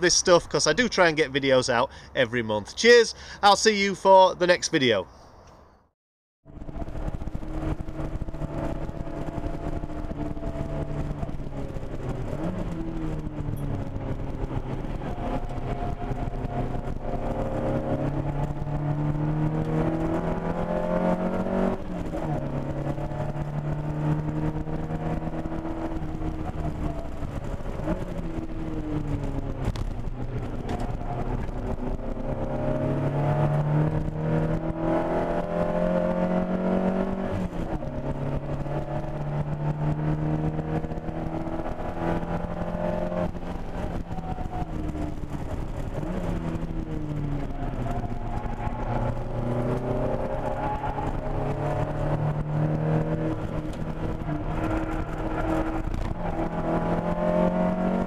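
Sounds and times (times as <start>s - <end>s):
car engine revving hard: 7.5s - 58.0s.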